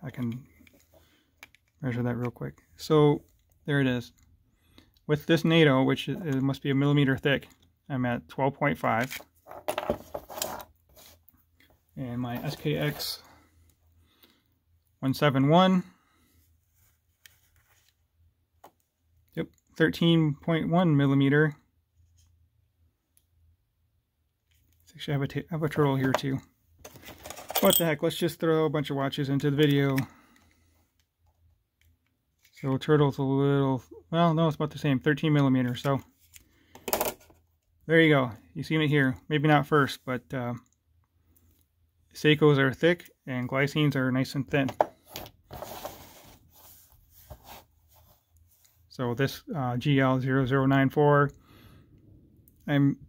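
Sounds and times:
rustling scrape: 0:09.4 - 0:11.2, 0:45.5 - 0:48.7.

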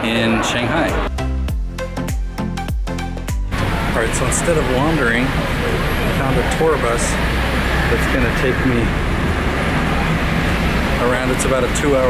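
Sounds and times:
street traffic: 0:00.0 - 0:01.4, 0:03.3 - 0:12.0
bus engine rumble: 0:03.5 - 0:12.0.

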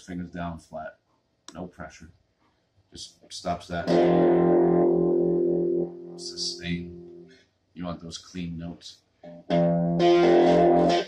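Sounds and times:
guitar chord ringing: 0:03.8 - 0:07.3, 0:09.3 - 0:11.0.

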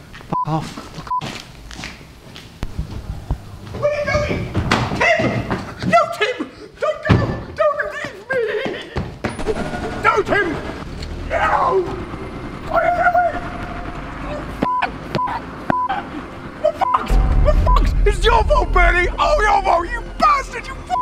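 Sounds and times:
short beeps: 0:16.8 - 0:18.0
thud: 0:17.1 - 0:20.4.

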